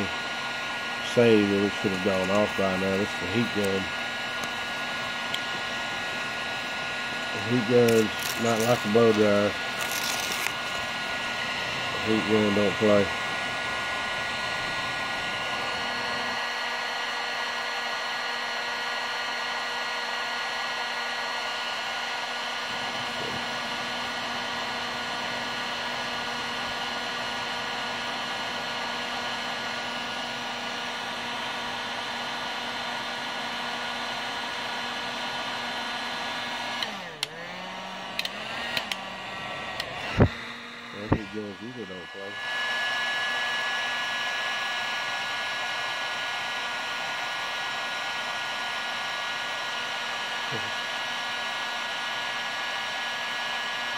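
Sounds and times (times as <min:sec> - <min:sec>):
heat gun blowing: 0:00.0 - 0:53.9
clicks: 0:38.2 - 0:39.0.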